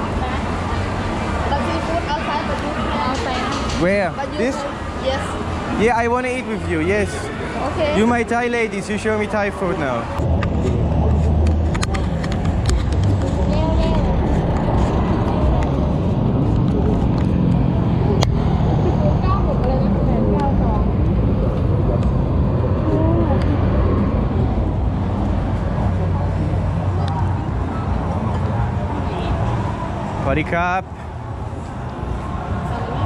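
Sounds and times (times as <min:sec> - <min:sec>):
faint voices: 0:00.0 - 0:33.0
motorbikes and cars passing: 0:00.0 - 0:33.0.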